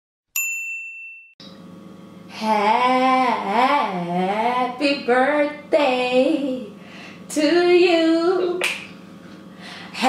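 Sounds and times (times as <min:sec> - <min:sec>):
high bell-like ding: 0:00.3 - 0:01.6.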